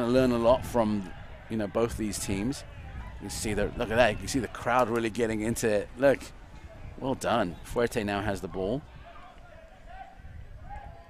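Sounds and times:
distant people shouting: 0:00.0 - 0:05.6, 0:08.8 - 0:11.0
wind rumble on microphone: 0:00.0 - 0:11.0.

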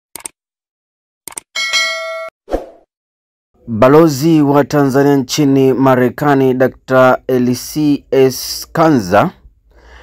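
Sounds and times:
bright bell-like ding: 0:01.6 - 0:02.3.

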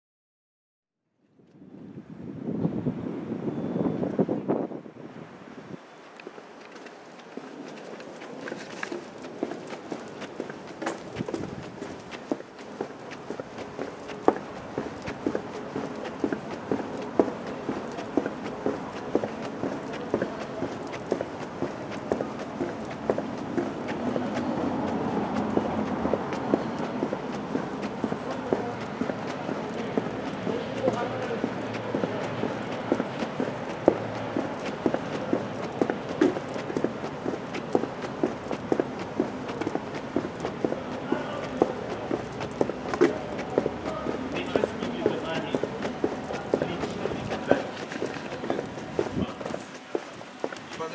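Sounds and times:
footsteps on pavement: 0:05.4 - 0:50.9
background murmur: 0:05.8 - 0:50.9.

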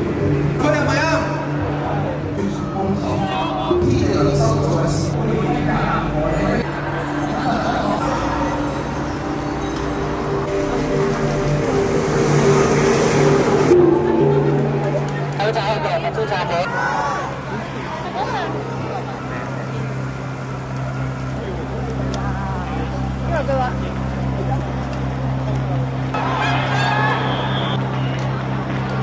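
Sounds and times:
music of low sustained notes: 0:00.0 - 0:26.2
protest crowd: 0:00.0 - 0:29.0
street noise: 0:00.0 - 0:29.0.

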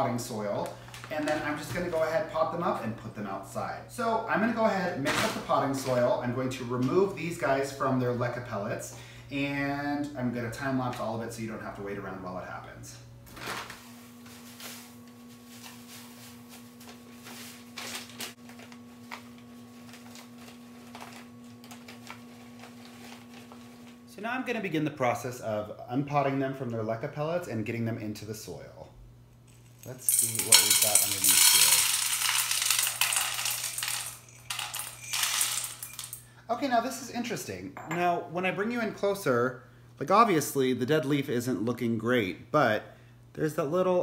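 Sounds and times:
potting mix pouring rustles: 0:29.5 - 0:36.1.

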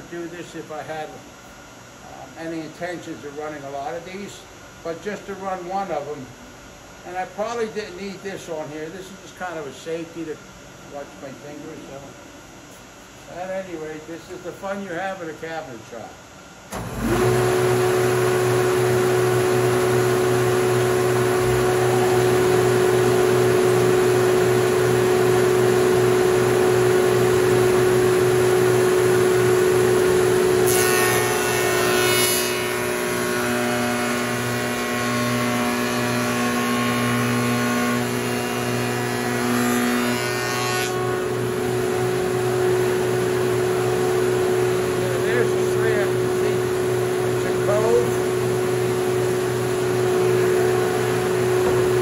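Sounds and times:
shaper motor humming: 0:16.7 - 0:40.2, 0:40.9 - 0:52.0
cutter cutting wood: 0:16.7 - 0:52.0.

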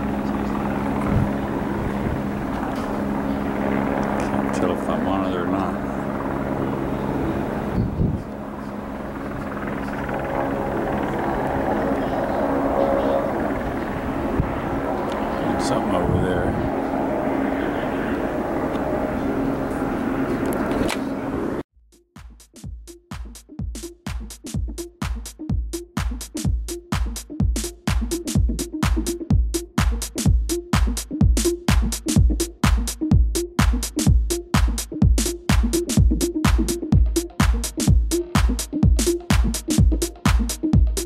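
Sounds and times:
music: 0:00.0 - 0:07.1, 0:08.5 - 0:13.6, 0:21.8 - 0:41.0
helicopter running: 0:00.0 - 0:21.6, 0:23.4 - 0:41.0
people chattering: 0:08.2 - 0:16.1, 0:17.1 - 0:21.5.

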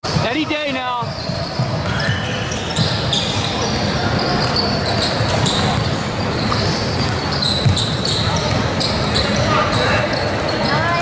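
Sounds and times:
voices in echoing gym: 0:00.0 - 0:11.0.

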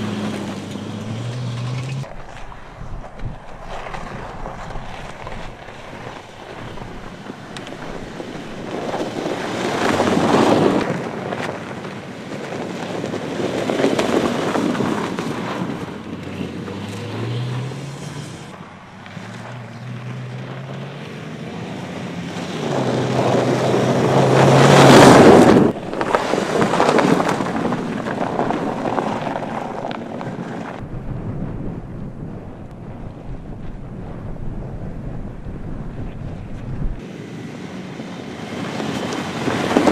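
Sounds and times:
car driving by on snow: 0:00.0 - 0:30.8, 0:37.0 - 0:39.9.

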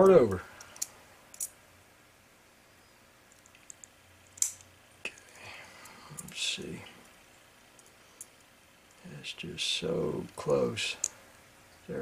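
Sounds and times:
small metal clicks: 0:00.6 - 0:01.6, 0:03.3 - 0:06.4.

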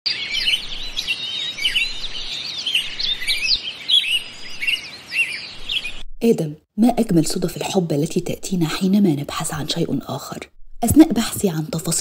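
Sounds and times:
many birds chirping: 0:00.1 - 0:06.0.

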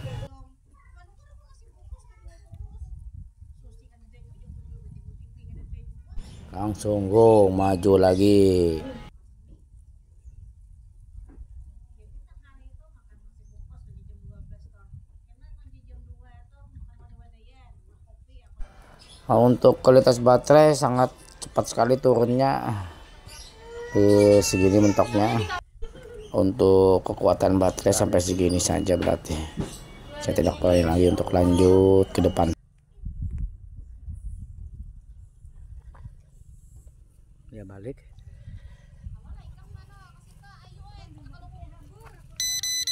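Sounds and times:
wind buffeting microphone: 0:00.0 - 0:07.6, 0:09.0 - 0:18.8, 0:32.9 - 0:37.4, 0:38.0 - 0:41.8.

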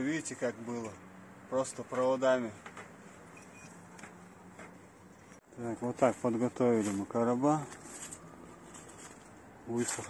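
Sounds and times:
faint high-pitched chirp: 0:03.3 - 0:03.8.

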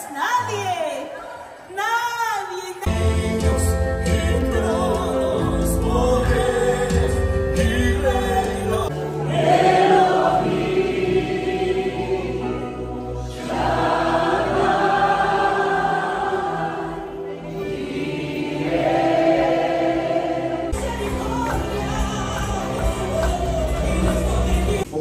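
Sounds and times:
keyboard: 0:02.9 - 0:25.0
worship team singing: 0:02.9 - 0:25.0.

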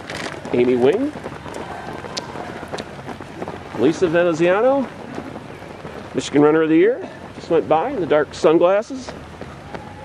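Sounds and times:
running footsteps on asphalt: 0:00.0 - 0:10.0
steady outdoor hiss: 0:00.0 - 0:10.0.

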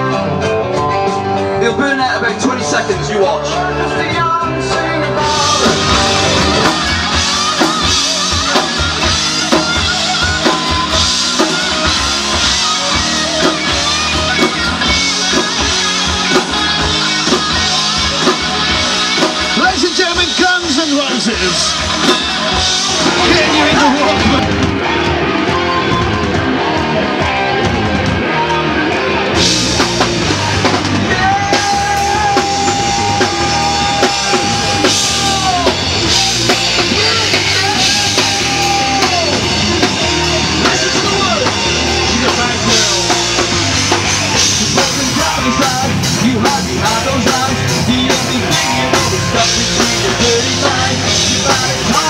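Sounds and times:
heavy rock band playing live: 0:00.0 - 0:52.0.

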